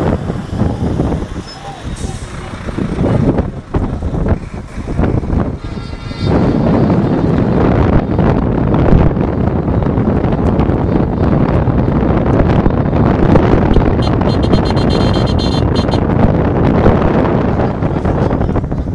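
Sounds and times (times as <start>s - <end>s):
vehicle engines running: 0.0s - 18.9s
wind buffeting microphone: 0.0s - 18.9s.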